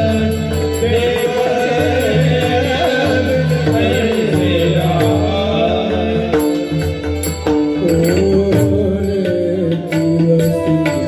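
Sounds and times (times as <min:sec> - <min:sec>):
harmonium playing held notes: 0:00.0 - 0:11.0.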